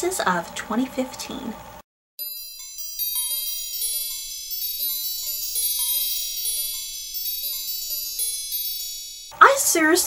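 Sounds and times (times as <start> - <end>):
lower chime notes: 2.2 - 9.4
twinkling chimes: 2.2 - 9.4.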